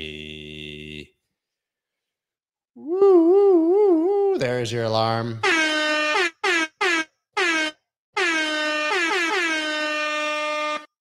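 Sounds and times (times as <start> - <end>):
air horn blasts: 5.4 - 11.0.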